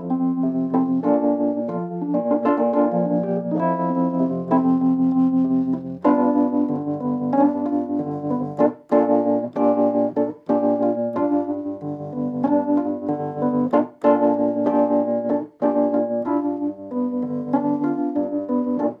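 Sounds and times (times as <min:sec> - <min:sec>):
organ-like keyboard chords: 0:00.0 - 0:19.0.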